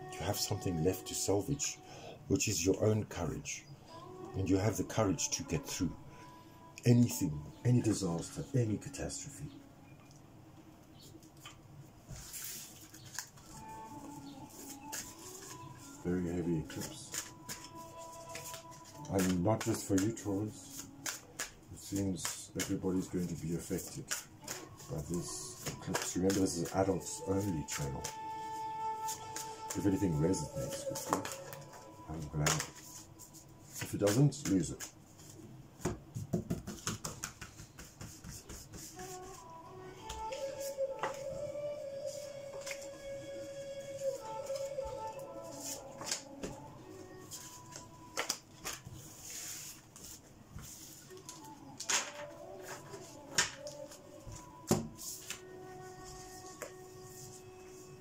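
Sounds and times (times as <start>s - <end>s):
soft background music: 0.0s - 36.3s, 37.0s - 58.0s
playing cards rustling: 12.1s - 16.0s, 16.6s - 28.2s, 29.1s - 35.4s, 36.3s - 39.3s, 42.6s - 42.8s, 45.5s - 46.6s, 47.3s - 55.4s
playing cards shuffled on table: 30.6s - 31.7s, 48.2s - 52.8s.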